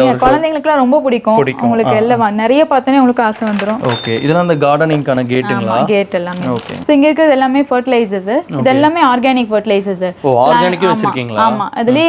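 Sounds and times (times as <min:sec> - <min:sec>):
person speaking: 0:00.0 - 0:00.5, 0:01.3 - 0:02.4, 0:03.7 - 0:06.9, 0:08.4 - 0:09.2, 0:10.3 - 0:12.0.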